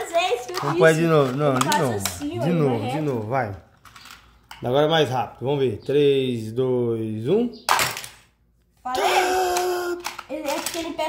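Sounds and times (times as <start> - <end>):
person holding a long exclamation: 8.9 - 10.1.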